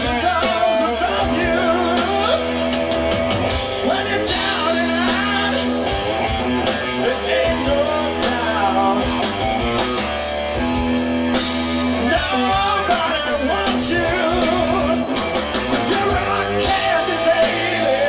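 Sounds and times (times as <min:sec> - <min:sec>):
man singing lead vocal: 0:00.0 - 0:02.9, 0:03.7 - 0:09.2, 0:12.0 - 0:18.0
hard rock band playing: 0:00.0 - 0:18.0.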